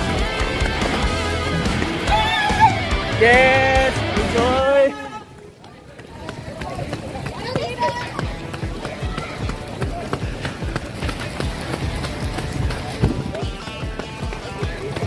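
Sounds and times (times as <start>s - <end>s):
footsteps on asphalt: 0.0s - 3.2s, 4.0s - 15.0s
faint runners' voices: 0.0s - 15.0s.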